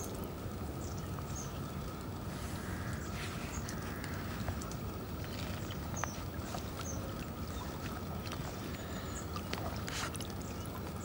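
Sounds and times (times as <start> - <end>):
water sloshing and dripping: 0.0 - 11.0
small splashes: 1.6 - 11.0.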